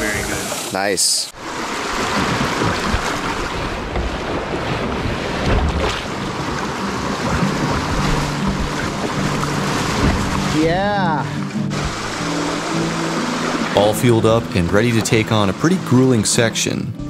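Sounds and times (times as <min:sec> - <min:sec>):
rushing whitewater: 0:00.0 - 0:16.9
wind buffeting microphone: 0:01.4 - 0:10.9
water splashing over camera: 0:01.4 - 0:16.2.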